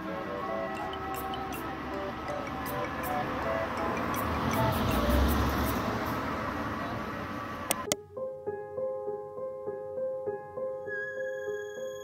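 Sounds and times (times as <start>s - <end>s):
street noise: 0.0s - 8.0s
chime melody from loudspeakers: 0.3s - 5.3s
car driving by: 0.4s - 7.9s.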